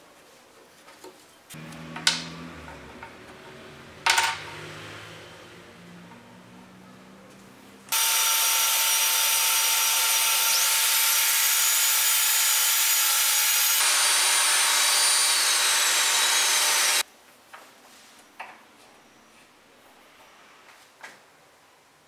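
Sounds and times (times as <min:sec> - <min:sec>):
mortiser motor whining: 0:01.6 - 0:04.6, 0:07.9 - 0:17.0.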